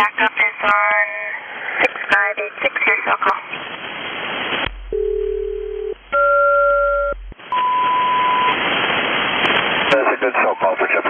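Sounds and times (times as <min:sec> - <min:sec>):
shortwave static: 0:00.1 - 0:11.0
radio tone pairs: 0:04.6 - 0:08.6
steady single tone: 0:04.7 - 0:08.5.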